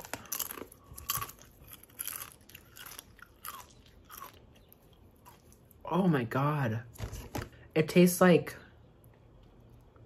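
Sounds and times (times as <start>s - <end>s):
chips being chewed crunching: 0.0s - 5.8s.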